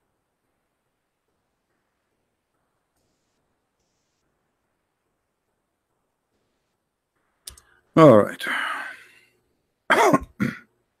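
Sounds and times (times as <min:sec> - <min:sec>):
man clearing his throat: 0:09.9 - 0:10.7.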